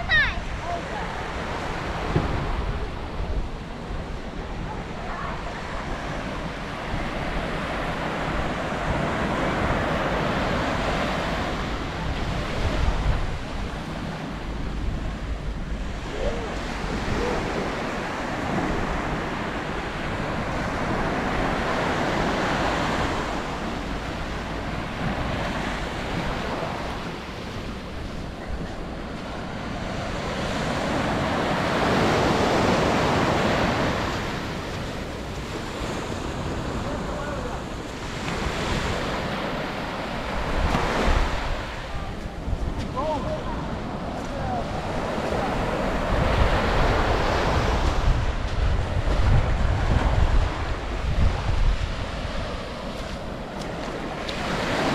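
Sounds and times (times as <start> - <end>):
small waves breaking on sand: 0.0 - 14.6, 15.5 - 54.9
wind buffeting microphone: 0.0 - 54.9.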